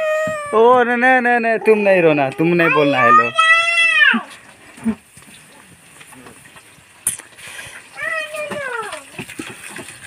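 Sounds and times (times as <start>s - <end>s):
baby whimpering: 0.0s - 0.7s
baby crying: 0.0s - 0.8s.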